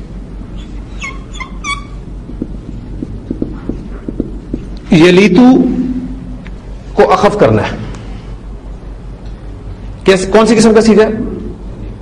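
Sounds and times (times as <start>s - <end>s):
whiteboard marker squeaking: 0.6s - 4.8s
marker ticking on board: 2.3s - 4.9s.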